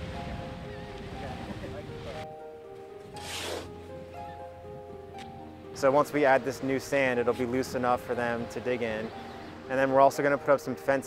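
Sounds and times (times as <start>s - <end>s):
background music with held tones: 0.0s - 11.0s
shovel scraping sand: 3.1s - 3.8s.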